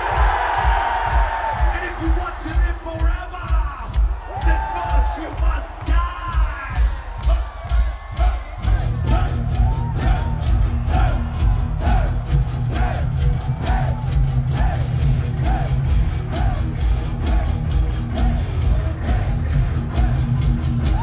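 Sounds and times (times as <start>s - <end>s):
crowd shouting along: 0.0s - 3.4s, 4.1s - 21.0s
pounding drum beat: 0.0s - 21.0s.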